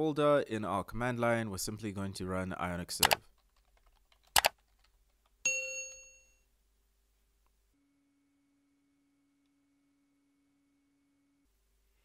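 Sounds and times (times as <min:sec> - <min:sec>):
sharp click: 0:03.0 - 0:03.2
bell-like notification ding: 0:05.5 - 0:06.4.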